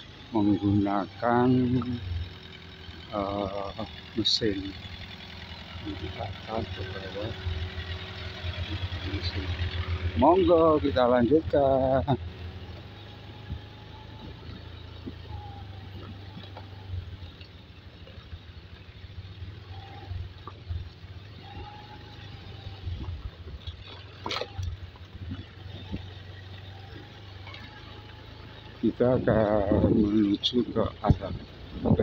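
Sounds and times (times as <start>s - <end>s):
distant engine drone: 0.0s - 32.0s.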